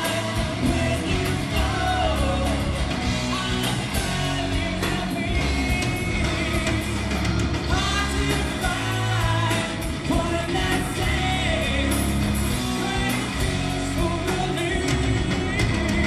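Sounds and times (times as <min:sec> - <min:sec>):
person singing: 0:00.0 - 0:16.0
rock band playing live: 0:00.0 - 0:16.0
steady drums: 0:00.0 - 0:16.0.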